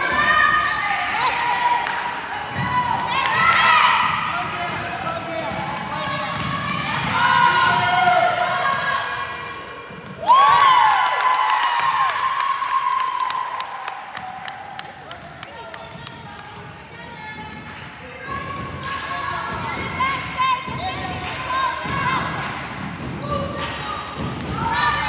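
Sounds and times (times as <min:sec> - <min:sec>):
sneakers squeaking on hardwood: 0:22.8 - 0:23.4.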